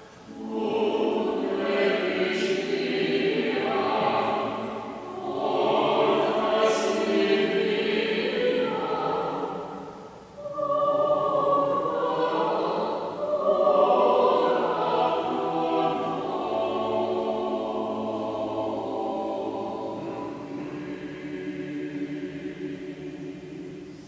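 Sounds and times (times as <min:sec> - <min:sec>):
choir singing held notes: 0:00.0 - 0:24.0.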